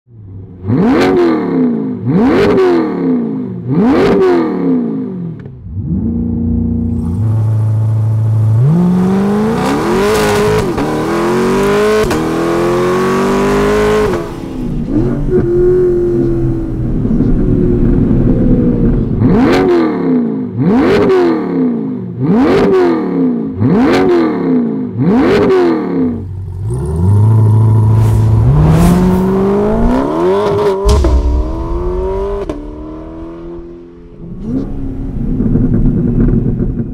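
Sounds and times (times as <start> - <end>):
sports car engine accelerating: 0.6 - 36.9.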